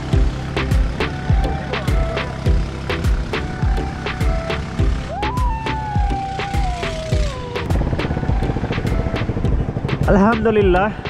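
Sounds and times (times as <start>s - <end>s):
background music with steady beat: 0.0s - 11.0s
boat engine running: 0.0s - 11.0s.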